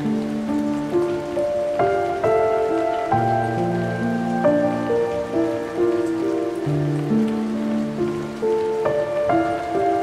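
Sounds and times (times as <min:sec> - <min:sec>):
slow solo piano: 0:00.0 - 0:10.0
steady rain: 0:00.0 - 0:10.0.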